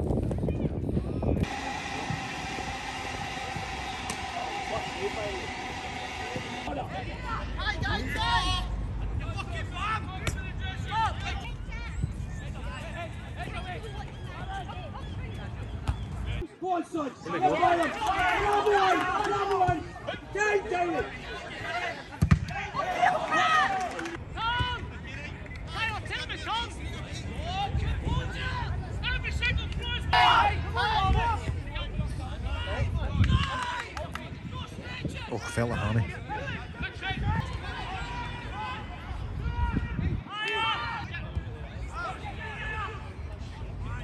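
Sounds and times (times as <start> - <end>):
passenger train running past: 1.4 - 6.7
people chatting: 4.3 - 15.7.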